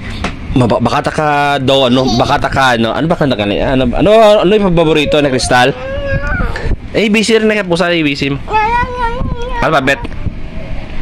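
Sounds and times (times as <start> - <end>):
toddler whining: 1.9 - 2.4, 4.8 - 6.8, 8.5 - 9.7.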